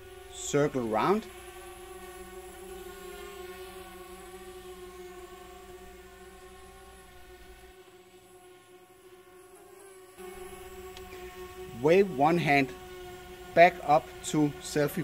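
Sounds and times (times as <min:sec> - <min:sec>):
drone propellers humming: 0:00.0 - 0:15.0.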